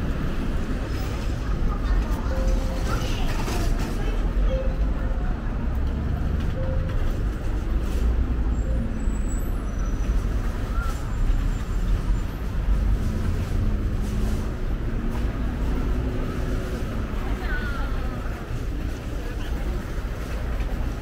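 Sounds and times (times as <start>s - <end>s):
rumble of traffic passing: 0.0s - 21.0s.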